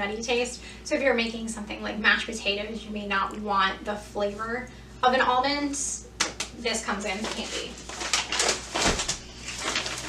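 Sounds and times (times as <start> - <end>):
paper bag rustling: 7.1 - 10.0.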